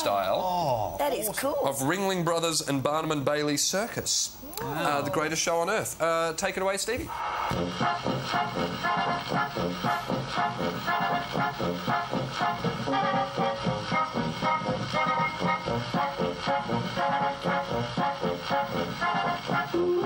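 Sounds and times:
optical organ playing march music: 7.2 - 20.0.

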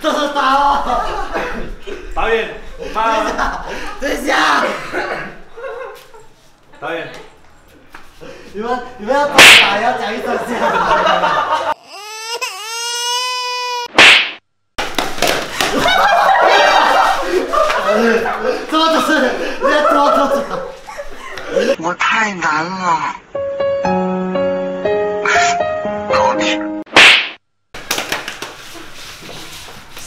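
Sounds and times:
people laughing: 0.0 - 6.4, 10.0 - 11.8, 15.5 - 21.8
room noise: 13.9 - 21.8, 26.9 - 30.0
light keyboard music: 23.3 - 26.9.

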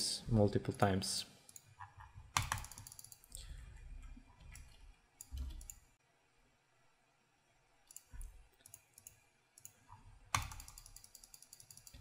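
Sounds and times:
computer mouse clicks: 1.5 - 3.5, 4.4 - 5.9, 7.8 - 12.0.

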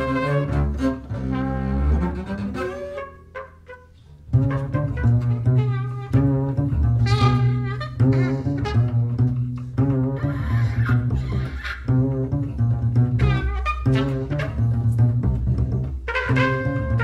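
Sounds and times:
bowed double bass: 0.0 - 17.0.

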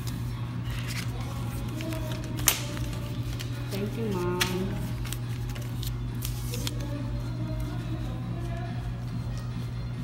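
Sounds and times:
paper rustling: 0.0 - 8.7.

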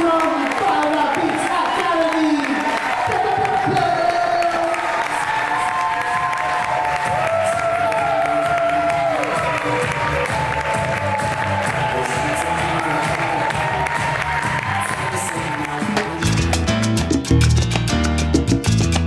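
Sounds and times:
audience applauding and cheering: 0.0 - 19.0
latin dance music: 0.0 - 19.0.

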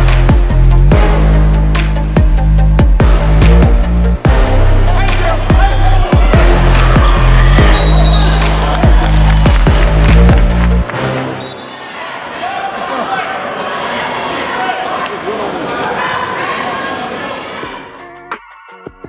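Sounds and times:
bass-heavy music with sharp beats: 0.0 - 10.9
gym crowd voices calling out: 4.9 - 9.5, 11.4 - 18.1.

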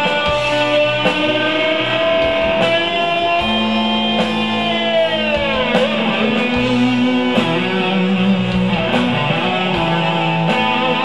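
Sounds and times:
electric guitar bending lead note: 0.0 - 11.0
rock band playing: 0.0 - 11.0.

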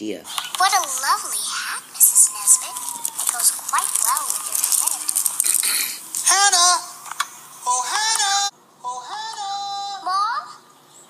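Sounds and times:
child making vocal sounds: 0.6 - 6.8, 9.0 - 10.6
plastic toy clicking and rattling: 2.5 - 6.3.

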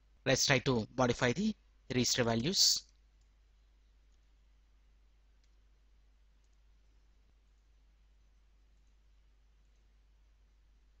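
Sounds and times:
computer keys and mouse clicks: 2.9 - 4.3, 5.3 - 5.7, 6.4 - 10.7.

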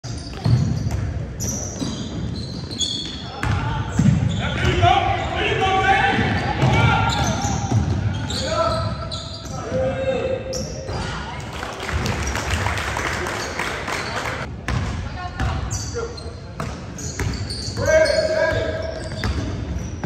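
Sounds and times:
sneakers squeaking: 0.0 - 20.0.

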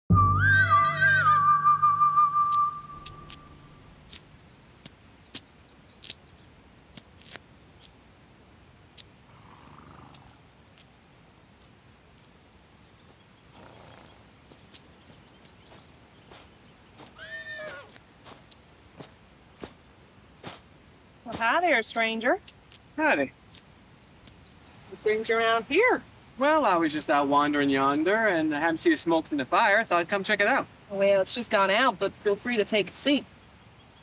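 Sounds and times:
whistled note: 0.1 - 3.8
horse whinnying: 0.4 - 1.6, 17.2 - 17.9
footsteps in dry leaves: 10.2 - 22.9.

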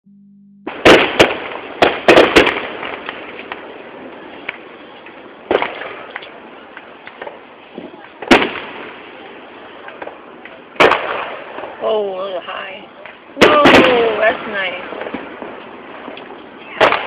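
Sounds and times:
fireworks bangs: 0.6 - 17.0
fireworks crackle and pops: 0.7 - 17.0.

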